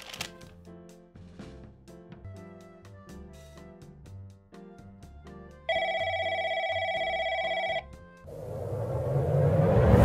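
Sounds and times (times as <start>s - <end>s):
soft background music: 0.0s - 8.3s
telephone ringing: 5.7s - 8.0s
rising whoosh: 8.3s - 10.0s.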